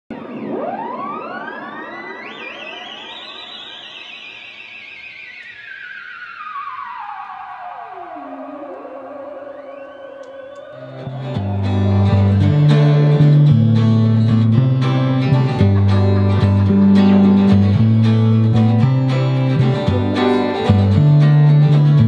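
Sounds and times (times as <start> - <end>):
synthesized tones sweeping: 0.1 - 22.0.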